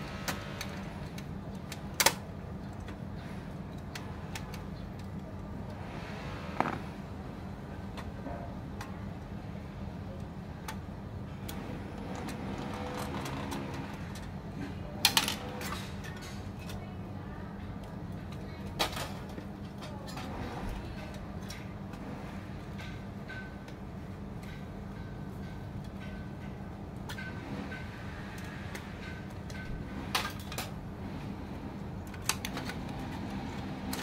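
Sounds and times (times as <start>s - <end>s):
low background hum: 0.0s - 34.0s.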